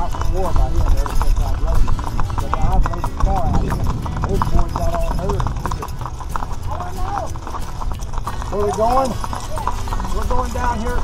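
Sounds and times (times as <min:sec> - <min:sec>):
hooves clip-clopping on pavement: 0:00.0 - 0:11.0.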